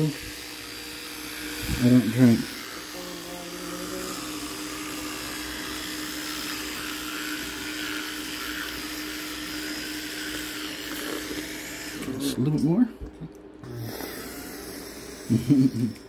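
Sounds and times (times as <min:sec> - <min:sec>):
electric toothbrush buzzing: 0:00.0 - 0:12.8, 0:13.6 - 0:16.0.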